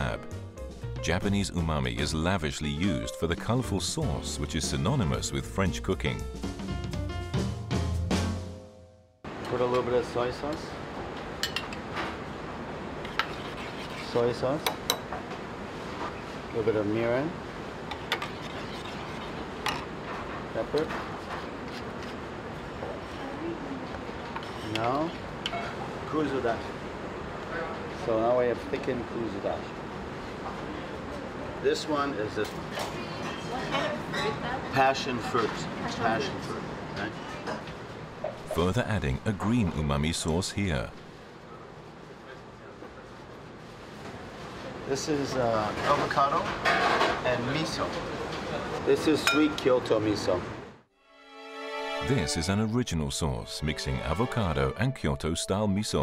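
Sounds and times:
kitchen hum and hiss: 0:09.3 - 0:38.5.

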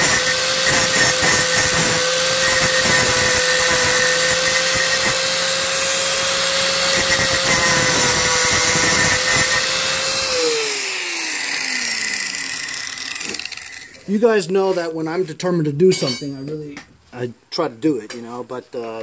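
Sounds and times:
angle grinder grinding steel: 0:00.0 - 0:14.2.

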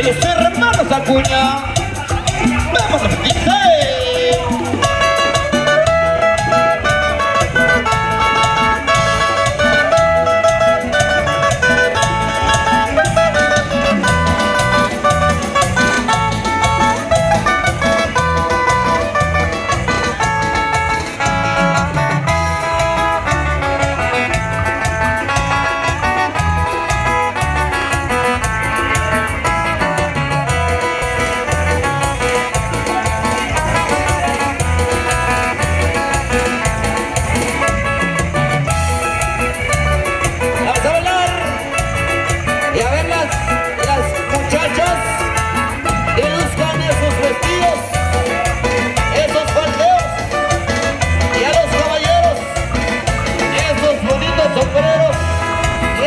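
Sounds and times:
live band playing dance music: 0:00.0 - 0:56.0.

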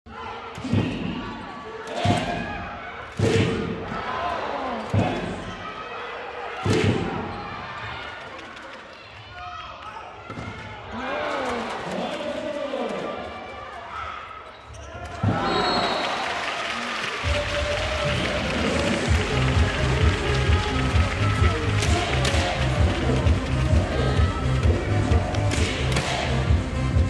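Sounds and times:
voices calling out in hall: 0:00.1 - 0:27.0
volleyballs struck and bouncing: 0:19.1 - 0:26.5.

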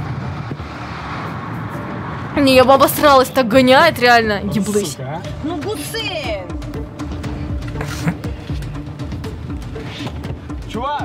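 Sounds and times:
car road and engine noise: 0:00.0 - 0:11.0
background music: 0:02.4 - 0:11.0.

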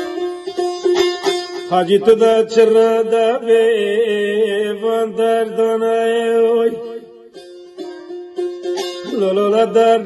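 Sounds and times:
folk song vocal: 0:01.7 - 0:07.2, 0:09.0 - 0:10.0.

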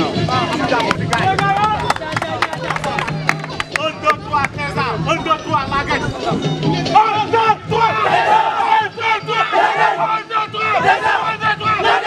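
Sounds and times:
team chanting and shouting: 0:06.0 - 0:12.0.

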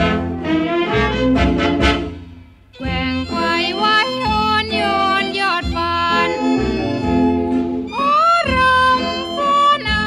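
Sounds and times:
dance band waltz accompaniment: 0:00.0 - 0:10.0
woman singing with vibrato: 0:02.8 - 0:06.9, 0:07.9 - 0:10.0.

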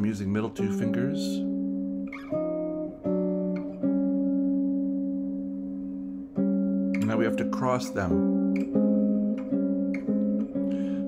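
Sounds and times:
clean electric guitar notes ringing: 0:00.0 - 0:11.0.

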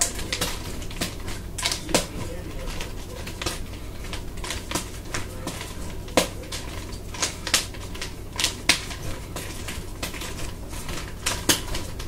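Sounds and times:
nunchaku clacking and smacking: 0:00.0 - 0:12.0.

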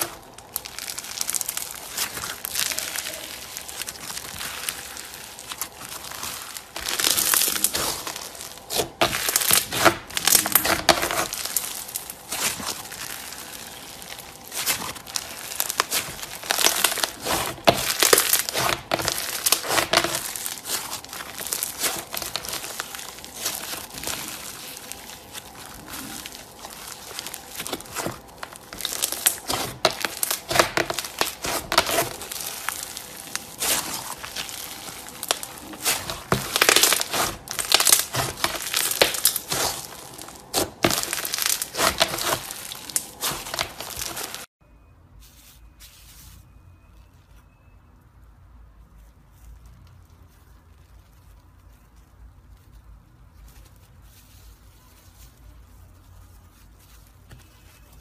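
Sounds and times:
crunchy slime crackling: 0:00.0 - 0:44.5, 0:45.4 - 0:58.0.

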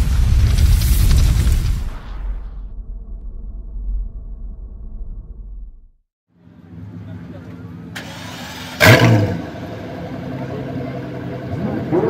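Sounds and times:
car engine idling: 0:06.4 - 0:12.0
engine revving: 0:07.0 - 0:12.0.

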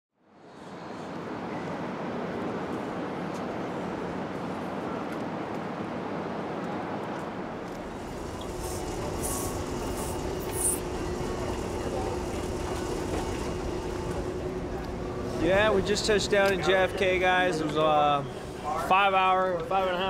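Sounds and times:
distant voices: 0:07.5 - 0:20.0
baggage carousel rumbling: 0:07.6 - 0:18.3.

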